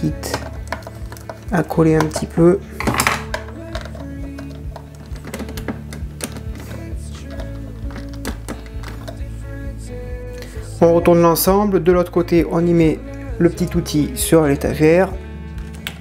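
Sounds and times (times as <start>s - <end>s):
background music with held notes: 0.0s - 16.0s.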